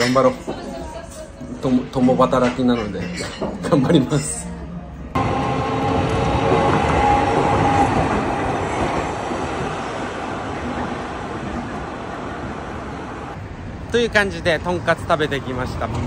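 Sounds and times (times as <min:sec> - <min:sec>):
streetcar whine: 0:04.5 - 0:16.0
streetcar wheels rumbling: 0:05.1 - 0:16.0.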